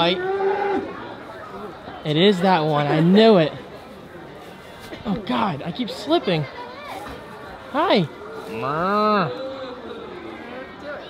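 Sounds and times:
cow mooing: 8.5 - 9.8.

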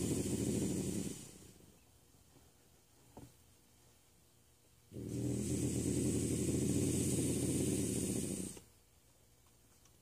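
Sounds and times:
bobcat growling and hissing: 0.0 - 1.5, 4.9 - 8.6.

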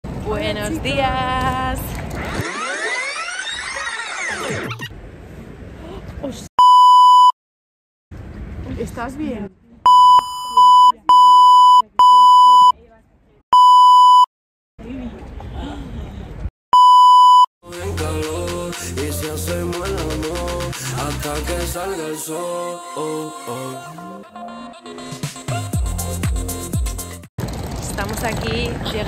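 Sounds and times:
electronic tone sweep: 2.2 - 4.9
electronic beep tone: 6.6 - 7.3, 9.9 - 12.7, 13.6 - 14.3, 16.8 - 17.5
music: 17.6 - 27.3.

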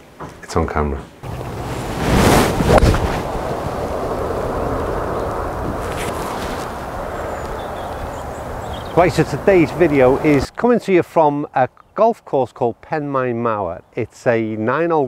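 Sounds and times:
wind buffeting microphone: 1.2 - 10.5.

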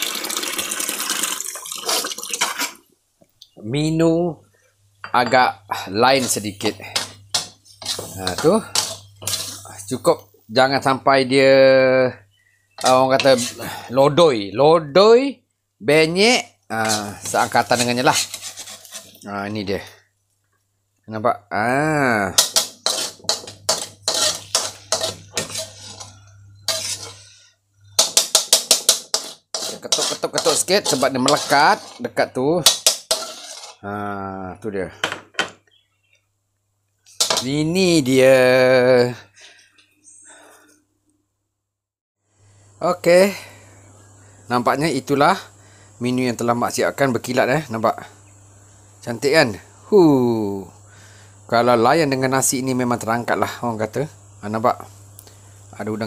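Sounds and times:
tap water running into sink: 0.0 - 2.8
metal spatula scraping a wok: 6.1 - 10.1, 12.7 - 13.9, 16.7 - 20.0, 22.0 - 33.9, 37.1 - 37.7
spatula tapping: 22.4 - 27.2, 28.0 - 32.0.

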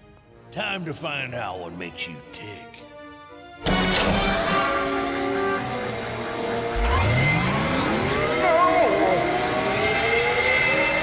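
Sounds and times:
dramatic cartoon score: 0.6 - 11.0
machine whirring up: 3.6 - 11.0.

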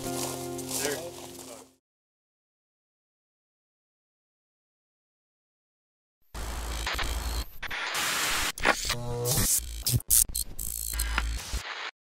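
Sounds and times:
stepped electronic tone: 6.4 - 11.9
electronic static and glitches: 6.4 - 12.0.

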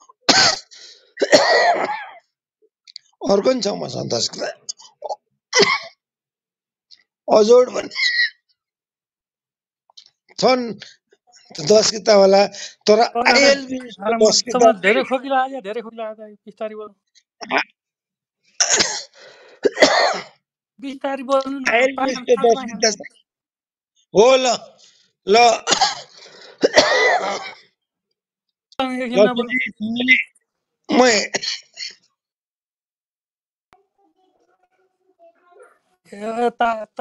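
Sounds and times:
person coughing: 0.3 - 2.2, 5.6 - 6.0, 18.6 - 20.4, 25.6 - 27.6
person speaking: 2.9 - 4.8, 11.4 - 17.6, 20.8 - 23.3, 28.8 - 31.4.

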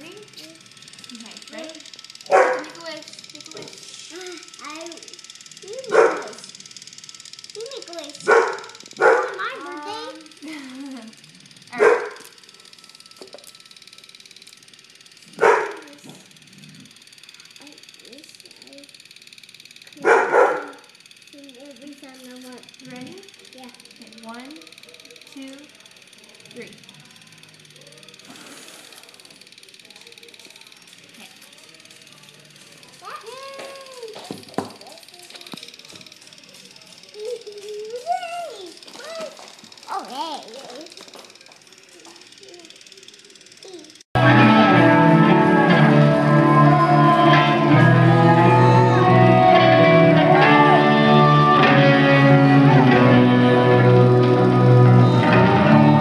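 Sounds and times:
dog barking: 2.3 - 2.8, 5.9 - 6.4, 8.2 - 9.4, 11.8 - 12.2, 15.4 - 15.8, 20.0 - 20.8
soft voices: 41.9 - 56.0.

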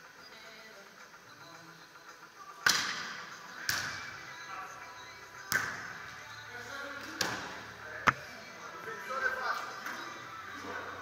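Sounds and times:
volleyball being struck: 8.0 - 8.2.

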